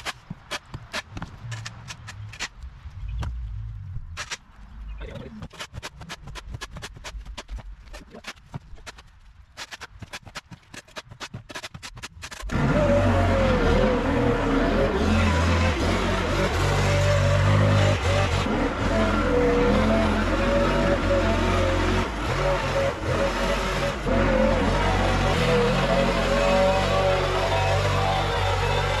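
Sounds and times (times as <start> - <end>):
leaf blower engine running: 12.5 - 29.0.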